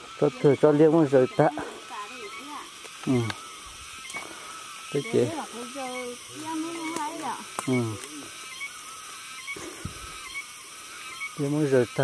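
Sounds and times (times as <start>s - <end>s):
thin high calls: 0.0s - 12.0s.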